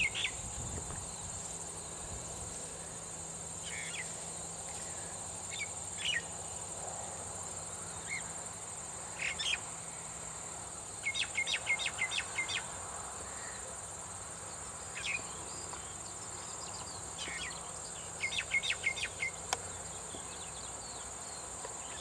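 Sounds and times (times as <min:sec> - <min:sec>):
bird chirping: 0:00.0 - 0:01.4, 0:11.0 - 0:12.7, 0:14.9 - 0:22.0
insect chorus: 0:00.0 - 0:22.0.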